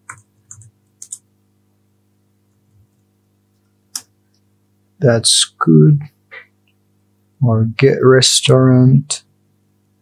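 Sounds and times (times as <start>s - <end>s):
computer keyboard clicks: 0.0s - 1.2s.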